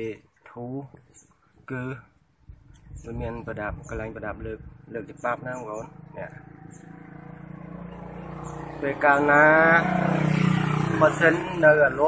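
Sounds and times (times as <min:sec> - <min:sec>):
man talking: 0:02.9 - 0:06.4, 0:08.8 - 0:09.9, 0:11.0 - 0:12.0
vehicle engine running: 0:03.2 - 0:12.0.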